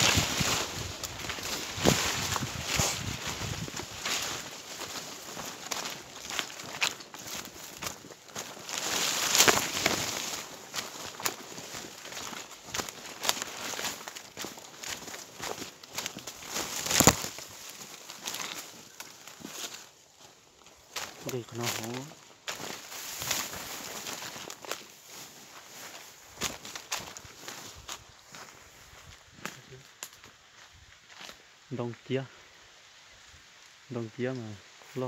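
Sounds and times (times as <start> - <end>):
footsteps through undergrowth: 0.0 - 35.0
leaves and branches crunching: 0.0 - 35.0.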